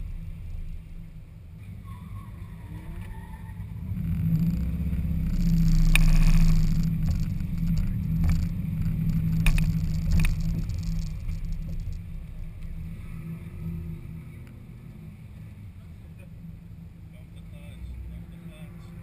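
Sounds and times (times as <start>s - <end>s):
car engine running at low speed: 0.0s - 19.0s
sharp ticks: 4.0s - 12.7s.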